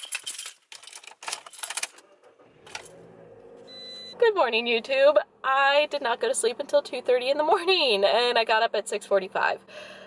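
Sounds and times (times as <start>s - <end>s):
car keys jangling: 0.0s - 2.0s.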